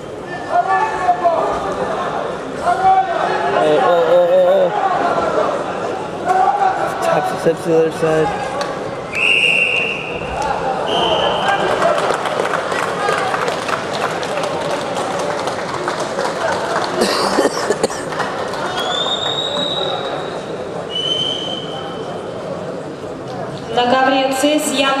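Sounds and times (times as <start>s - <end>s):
hall chatter: 0.0s - 25.0s
referee whistle blasts: 9.1s - 11.6s, 20.9s - 21.9s.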